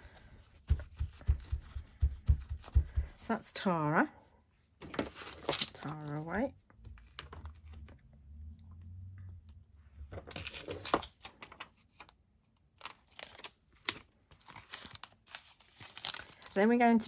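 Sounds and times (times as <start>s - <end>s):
plastic sheet crinkling: 4.8s - 8.0s, 12.8s - 17.0s.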